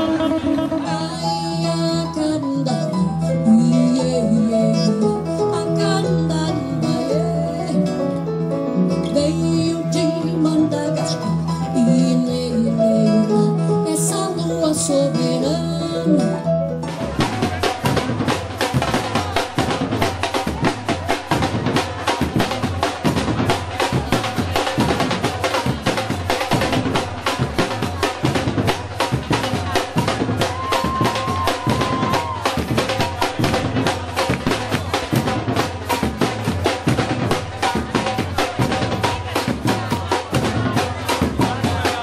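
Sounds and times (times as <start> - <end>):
hand drums playing fast rhythm: 0.0 - 8.0, 9.2 - 42.0
woman singing with band: 0.0 - 8.2, 9.0 - 16.5, 29.5 - 35.3.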